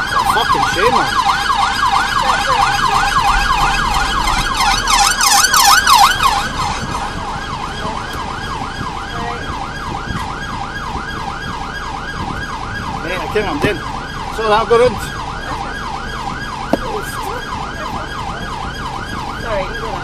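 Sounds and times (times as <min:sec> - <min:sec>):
police siren wailing: 0:00.0 - 0:20.0.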